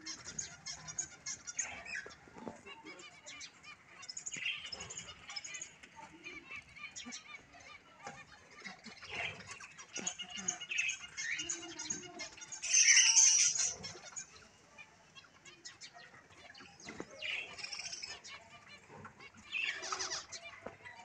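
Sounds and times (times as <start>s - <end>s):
chicks chirping: 0.0s - 21.0s
chicks rustling in grain: 0.0s - 21.0s.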